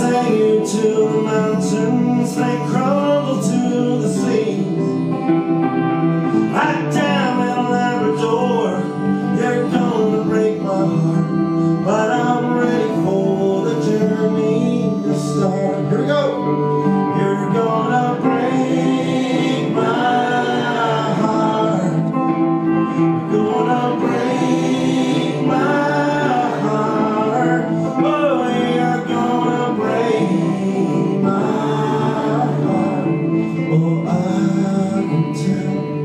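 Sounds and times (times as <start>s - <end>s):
harmonica lead: 0.0s - 36.0s
strummed guitars: 0.0s - 36.0s.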